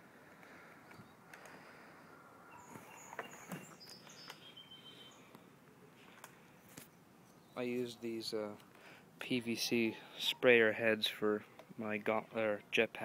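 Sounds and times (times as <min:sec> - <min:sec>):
faint outdoor ambience: 0:00.0 - 0:13.0
high bird chirps: 0:02.5 - 0:05.3.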